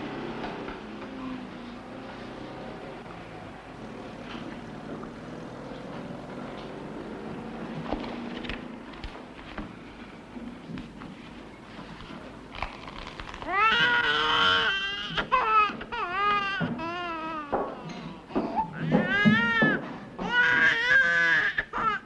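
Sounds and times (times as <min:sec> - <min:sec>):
low room murmur: 0:00.0 - 0:22.0.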